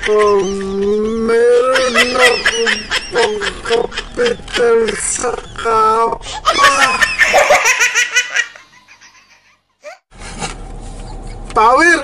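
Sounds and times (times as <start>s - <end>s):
baby laughing: 0.0s - 5.0s
low steady hum: 0.0s - 12.0s.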